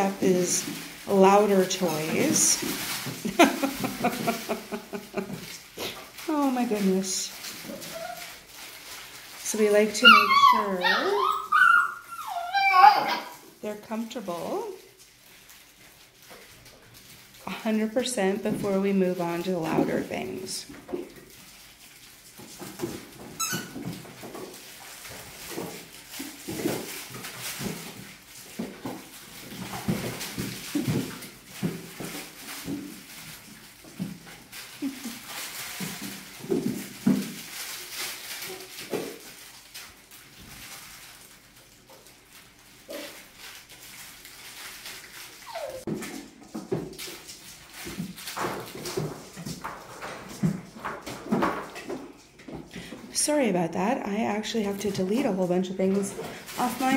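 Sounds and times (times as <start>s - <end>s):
paws scuffling with toys: 0.0s - 56.9s
puppies whimpering and yipping: 7.6s - 8.4s, 9.9s - 13.4s, 45.3s - 45.9s.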